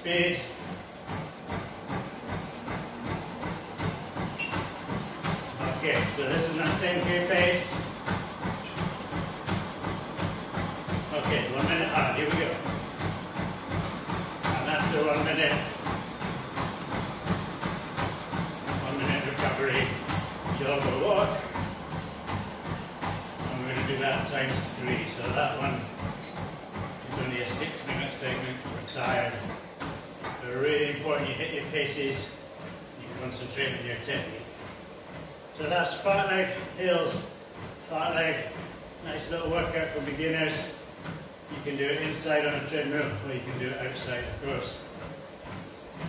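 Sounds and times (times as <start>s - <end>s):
running footfalls on treadmill belt: 0.0s - 46.0s
treadmill motor and belt noise: 0.0s - 46.0s.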